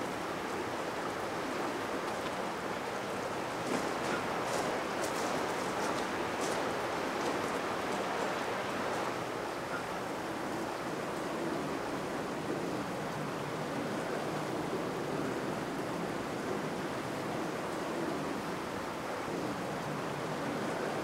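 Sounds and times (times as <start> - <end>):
river water rushing: 0.0 - 21.0.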